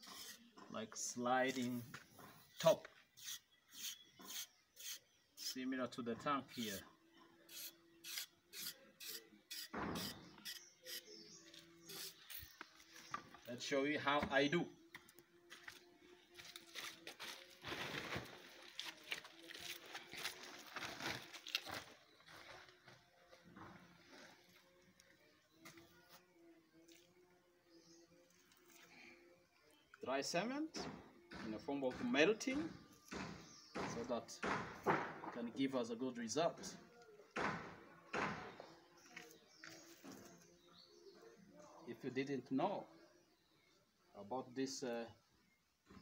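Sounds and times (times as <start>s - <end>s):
cement bag rustling and crinkling: 16.7s - 22.8s.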